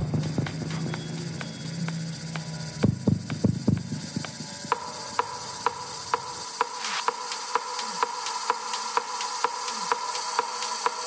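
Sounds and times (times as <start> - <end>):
steady pitched tone: 0.0 - 7.1
dry clicking percussion: 0.0 - 11.0.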